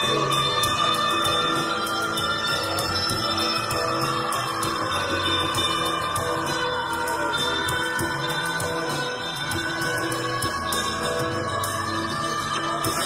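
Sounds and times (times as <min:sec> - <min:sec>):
droning psychedelic music: 0:00.0 - 0:13.0.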